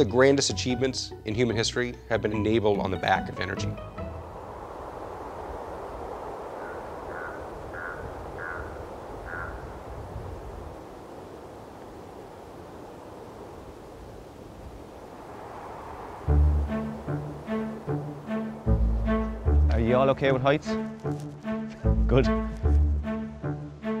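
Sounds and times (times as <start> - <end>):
steady low rumble: 4.1 - 20.4
bird calling: 6.2 - 13.3.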